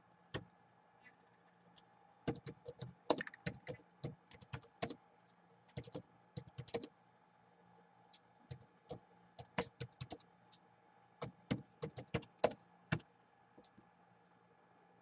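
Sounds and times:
faint steady hum: 0.0 - 15.0
laptop keyboard typing: 1.7 - 5.0, 5.7 - 6.9, 8.5 - 10.3, 11.2 - 13.7.

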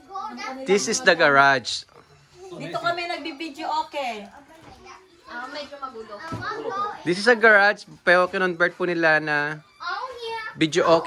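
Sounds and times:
children chattering: 0.0 - 1.3, 2.2 - 7.7.

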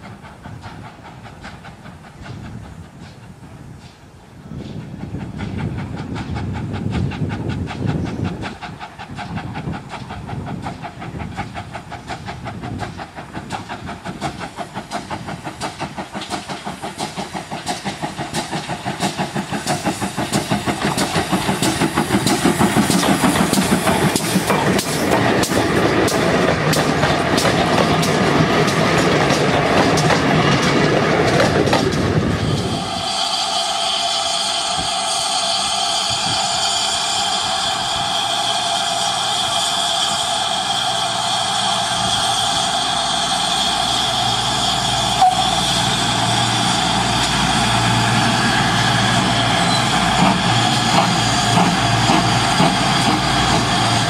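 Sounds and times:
steam locomotive exhaust beats: 0.0 - 54.0
wheels clicking over rails: 10.0 - 32.2.

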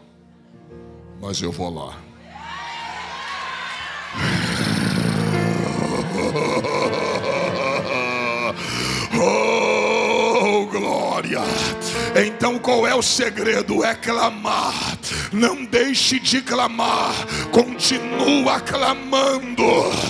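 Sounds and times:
music playing: 0.0 - 20.0
crowd shouting and cheering: 2.2 - 10.9, 12.7 - 20.0.

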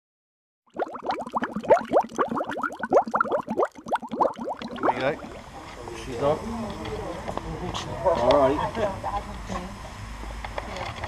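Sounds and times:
bubbly plops: 0.7 - 5.6.

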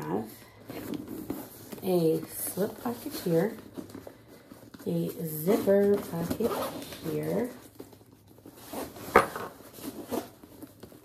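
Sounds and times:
rustling inside a bag: 0.0 - 11.0.

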